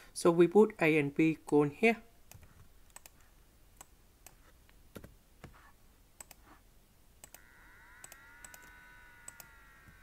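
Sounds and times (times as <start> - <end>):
computer mouse and keyboard clicks: 2.3 - 5.1, 8.0 - 10.0
faint steady multi-pitch tone: 7.2 - 10.0.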